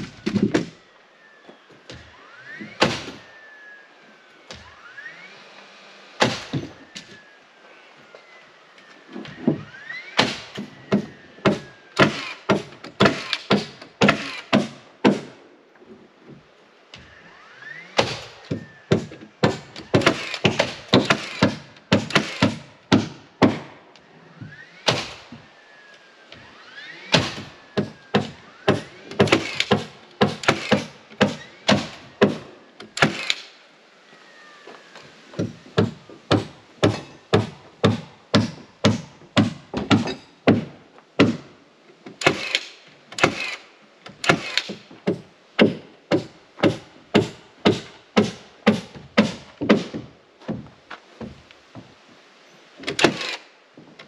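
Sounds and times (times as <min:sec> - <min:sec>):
hammer striking nails into wood: 0:10.2 - 0:15.3, 0:18.0 - 0:23.7, 0:27.1 - 0:32.4, 0:35.4 - 0:41.5, 0:44.2 - 0:50.1.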